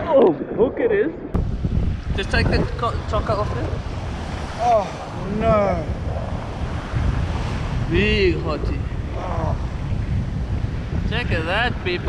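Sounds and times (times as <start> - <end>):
wind buffeting microphone: 0.0 - 12.0
surf washing: 1.4 - 12.0.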